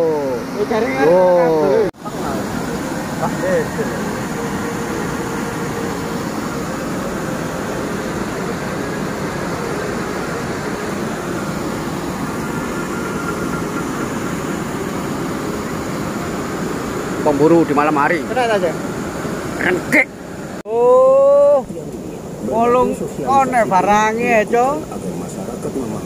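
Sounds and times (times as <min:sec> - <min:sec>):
water rushing over weir: 0:00.0 - 0:26.0.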